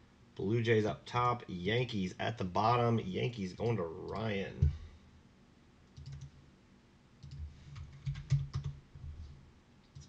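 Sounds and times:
computer keyboard typing: 5.9 - 6.4, 7.2 - 8.8.

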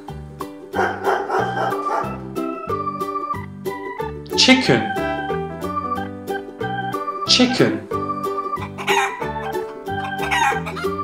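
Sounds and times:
organ music: 0.0 - 11.0
chicken calling: 0.8 - 4.0, 4.8 - 11.0.

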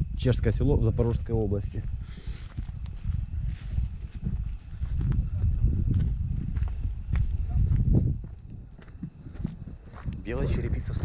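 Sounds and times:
wind buffeting microphone: 0.0 - 11.0
footsteps through dry grass: 1.0 - 10.2.

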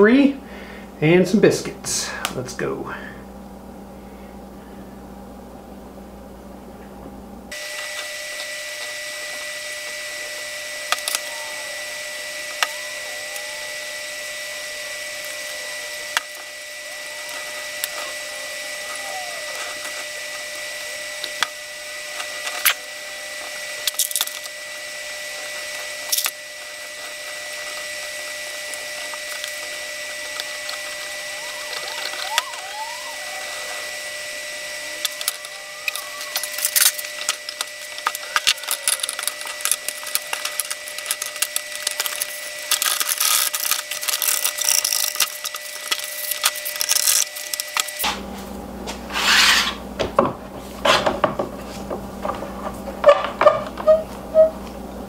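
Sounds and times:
high whine and hiss: 0.0 - 55.0
short squeaks: 53.0 - 54.7.

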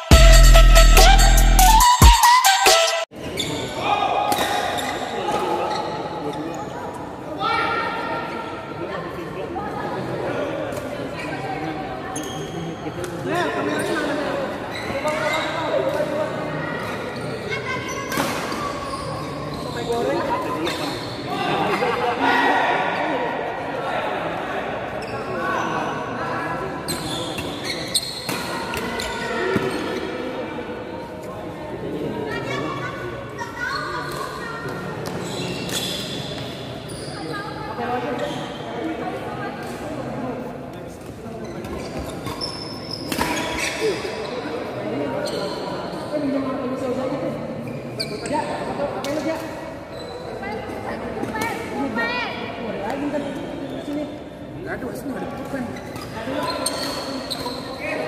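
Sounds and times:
murmur of voices: 3.1 - 58.0.

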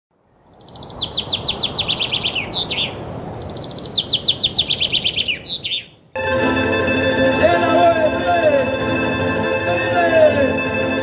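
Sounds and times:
songbird singing: 0.2 - 6.1.

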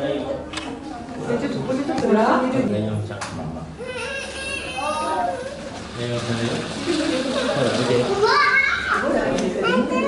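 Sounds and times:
children calling and chattering: 3.8 - 10.0.

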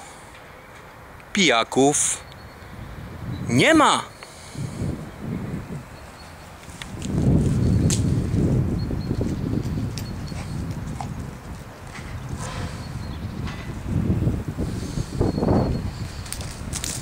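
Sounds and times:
wind noise on microphone: 2.4 - 17.0.

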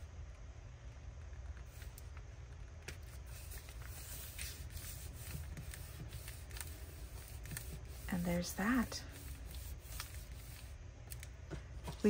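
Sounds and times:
paper rustling and rubbing: 1.6 - 10.8.

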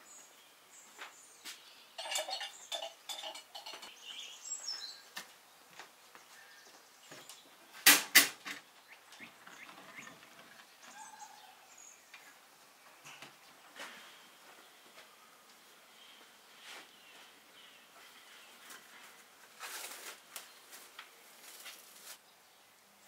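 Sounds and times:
dish clanking on metal stove: 2.0 - 3.9
kitchenware clinking and knocking: 2.0 - 3.9.

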